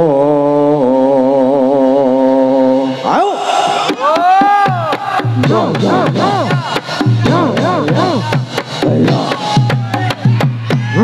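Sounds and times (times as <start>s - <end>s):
man singing a long note: 0.0s - 3.9s, 5.2s - 9.7s.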